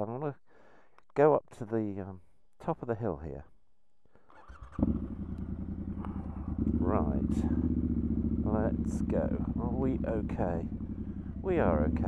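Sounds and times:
motorcycle engine starting and idling: 0:04.3 - 0:12.0.

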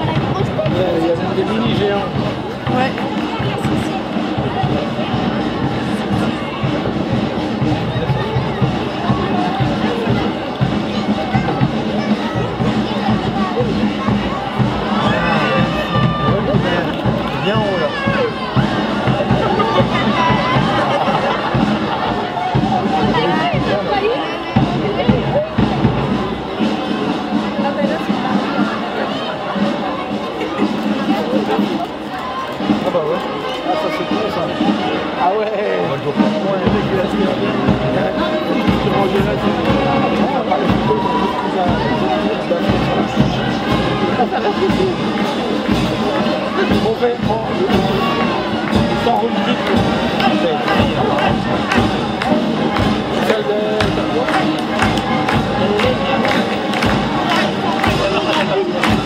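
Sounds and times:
crowd talking: 0:00.0 - 0:59.0
music playing: 0:00.0 - 0:59.0.

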